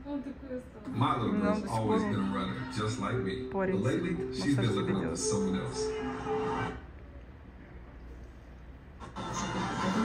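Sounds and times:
television music: 0.9s - 6.9s, 9.0s - 10.0s.

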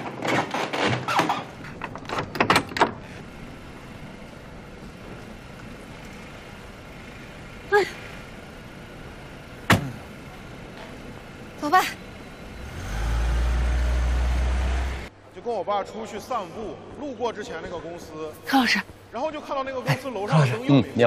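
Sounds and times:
door opening and swinging shut: 0.0s - 3.2s.

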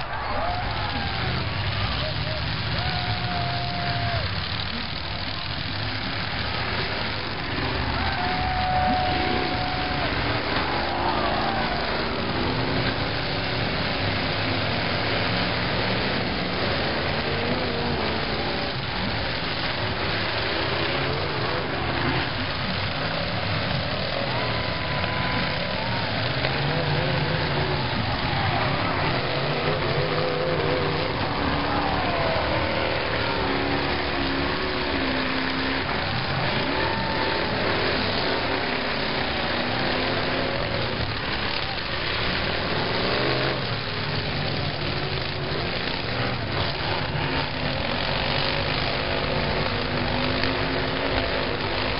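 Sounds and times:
car engines revving: 0.0s - 51.9s
crowd voices: 0.0s - 51.9s.

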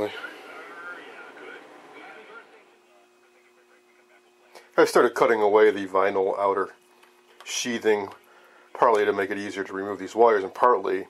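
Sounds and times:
man's voice: 0.0s - 6.7s
faint steady hum: 0.0s - 11.0s.

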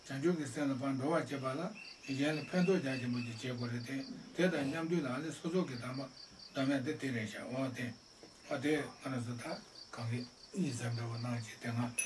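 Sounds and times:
cricket chirping: 0.0s - 12.0s
man talking: 0.0s - 12.0s.

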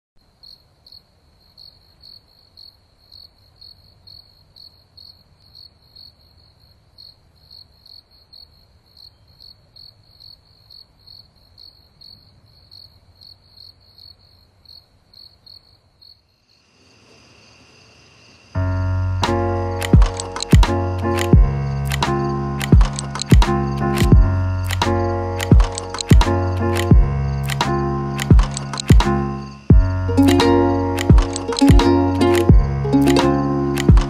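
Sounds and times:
cricket chirping: 0.2s - 34.0s.

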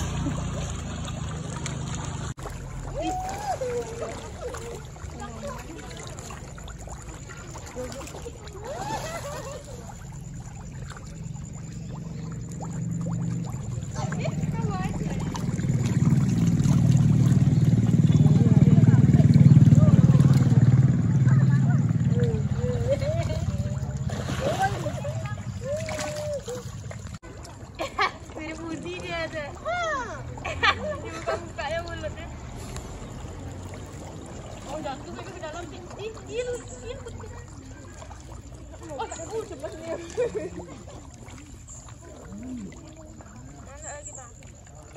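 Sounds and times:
vehicle engine running: 0.0s - 2.7s, 10.1s - 25.6s
fish churning water: 0.0s - 44.9s.

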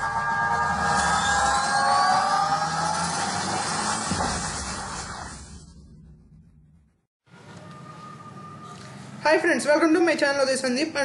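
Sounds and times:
noisy wash: 0.0s - 6.5s
synth hit: 0.0s - 7.0s
synthesized rising tones: 0.0s - 7.0s.

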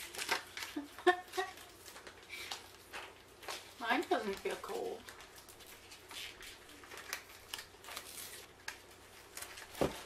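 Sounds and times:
plastic icing bags crinkling: 0.0s - 10.0s
sharp plastic crackles: 0.0s - 10.0s.

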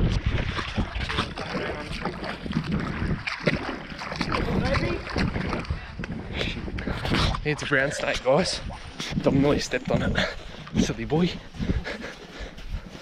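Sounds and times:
feet splashing through water: 0.0s - 13.0s
wind buffeting microphone: 0.0s - 13.0s.

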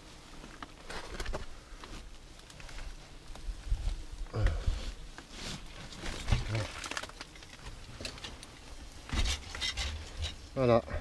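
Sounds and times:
rustling and crackling: 0.0s - 11.0s.

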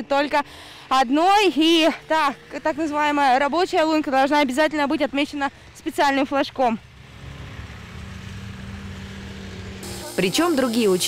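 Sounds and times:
small engine running: 6.8s - 11.0s.

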